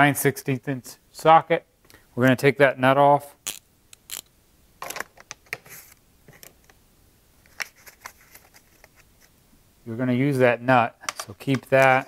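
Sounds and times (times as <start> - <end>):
socket ratchet clicking: 3.5 - 4.3.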